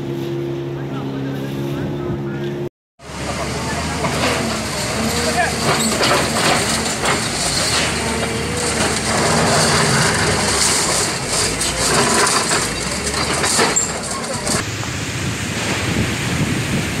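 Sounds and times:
wind: 0.0s - 17.0s
faint voices: 0.8s - 8.9s, 11.4s - 14.6s.

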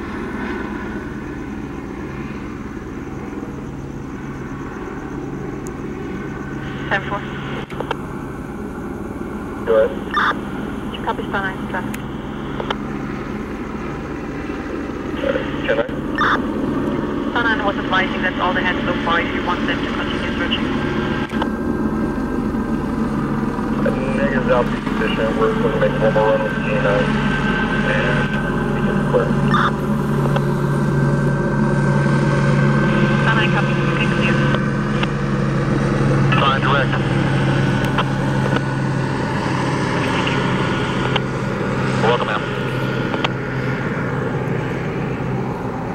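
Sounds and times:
vehicle engine idling: 0.0s - 45.9s.

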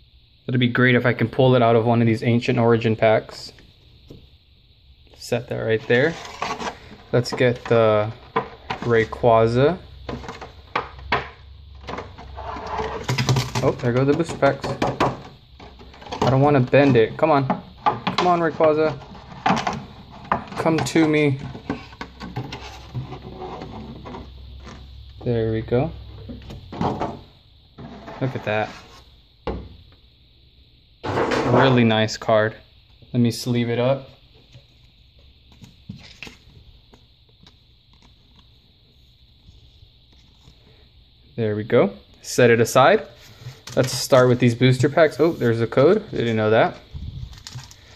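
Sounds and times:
plastic rustling: 45.4s - 47.9s
plastic packaging crinkling: 47.1s - 47.9s.

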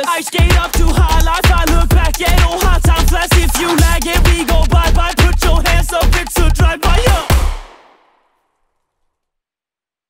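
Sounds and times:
song's last sound: 0.3s - 8.2s.

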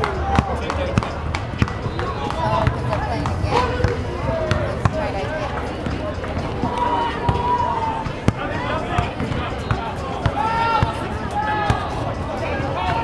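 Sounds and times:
people talking and calling out: 0.0s - 13.0s
basketball bouncing on pavement: 0.1s - 7.5s, 8.2s - 11.0s.

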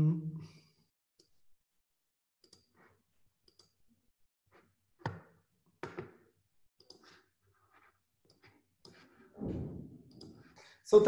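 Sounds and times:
computer mouse clicks: 2.4s - 2.9s, 3.5s - 3.8s, 6.8s - 7.3s, 10.1s - 10.5s.

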